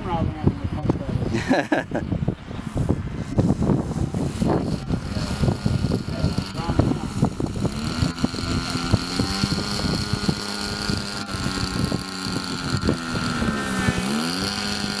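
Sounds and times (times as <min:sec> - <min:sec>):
wind buffeting microphone: 0:00.0 - 0:15.0
model airplane motor and propeller: 0:03.4 - 0:15.0.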